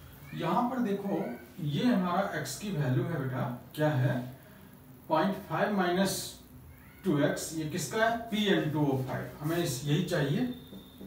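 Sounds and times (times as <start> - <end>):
man speaking: 0.3 - 4.4, 5.1 - 10.6.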